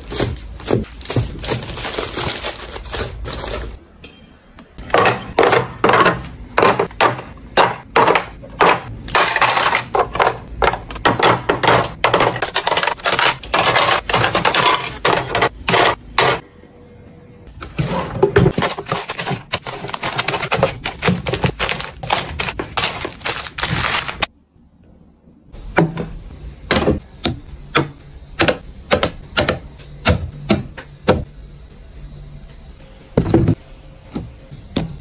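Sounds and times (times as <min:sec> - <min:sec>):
cosmetics clattering in plastic trays: 0:04.8 - 0:16.4, 0:17.6 - 0:24.3.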